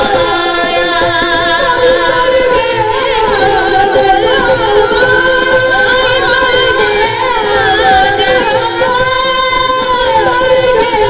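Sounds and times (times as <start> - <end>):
men singing devotional song: 0.0 - 11.0.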